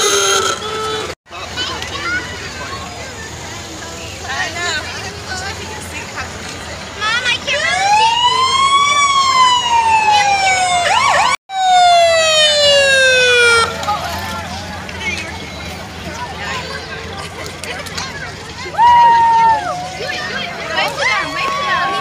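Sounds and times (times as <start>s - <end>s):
crowd voices: 0.0s - 22.0s
fire truck siren wailing: 7.4s - 14.6s.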